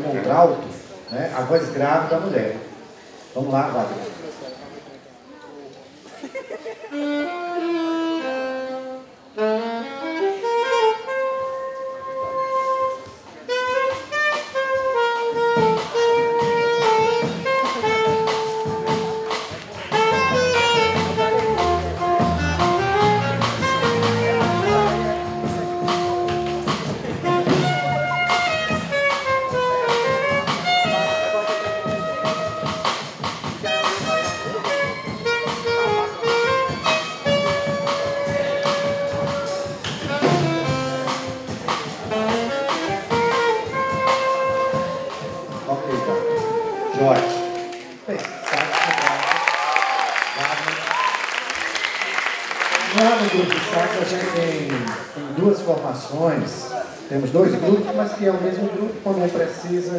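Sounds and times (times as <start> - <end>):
drums: 6.1 - 55.1
saxophone jazz melody: 6.7 - 48.1
bass line: 12.1 - 47.7.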